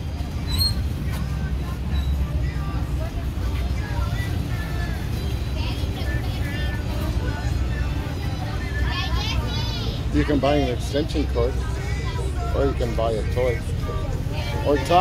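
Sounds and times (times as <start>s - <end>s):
background voices: 0.0s - 15.0s
faint music: 0.0s - 15.0s.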